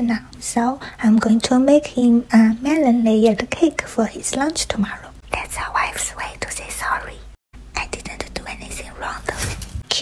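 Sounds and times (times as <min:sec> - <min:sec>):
person whispering: 0:04.8 - 0:09.6.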